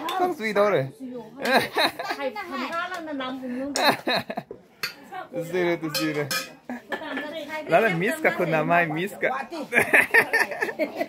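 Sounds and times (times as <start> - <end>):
metal pots clanking: 4.8 - 5.0, 5.8 - 7.2.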